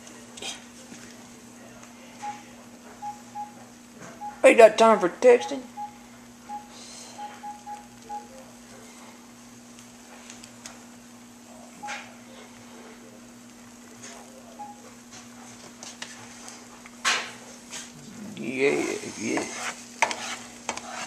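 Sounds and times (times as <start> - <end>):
steady low hum: 0.0 - 15.5, 16.2 - 21.0
phone keypad beeps: 2.2 - 3.6, 4.2 - 4.5, 5.3 - 8.3, 14.6 - 14.8
eggs sizzling in a pan: 7.9 - 21.0.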